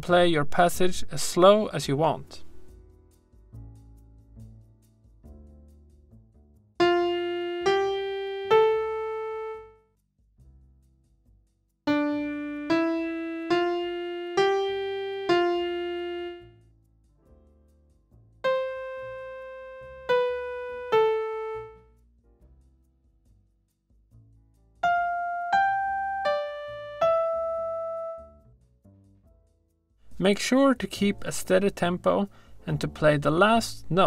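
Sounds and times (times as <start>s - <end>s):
digital piano notes: 6.8s - 9.8s, 11.9s - 16.5s, 18.4s - 21.8s, 24.8s - 28.4s.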